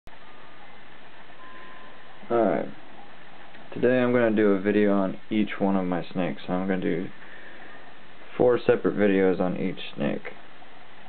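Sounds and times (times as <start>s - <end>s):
faint high tone: 0.1s - 4.3s
steady background hiss: 0.1s - 11.0s.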